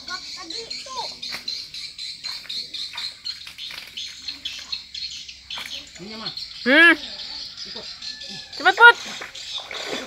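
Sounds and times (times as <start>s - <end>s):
small birds chirping: 0.0s - 10.0s
splashes in shallow water: 2.2s - 4.8s, 8.6s - 10.0s.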